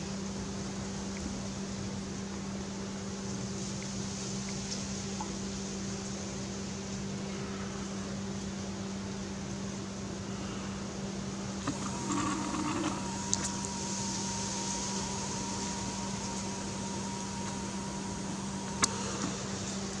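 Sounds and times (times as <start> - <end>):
low hum and hiss: 0.0 - 20.0
zoom motor click: 11.6 - 19.8
lens zoom motor whining: 11.6 - 20.0.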